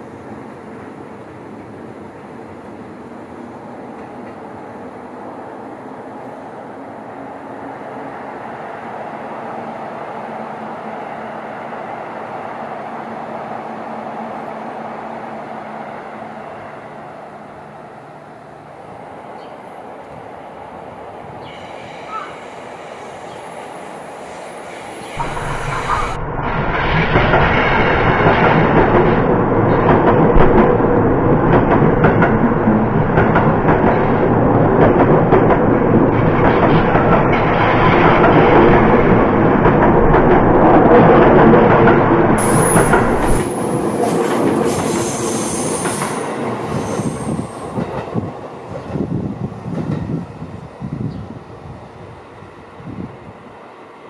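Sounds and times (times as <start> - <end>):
electric train passing: 0.0 - 54.0.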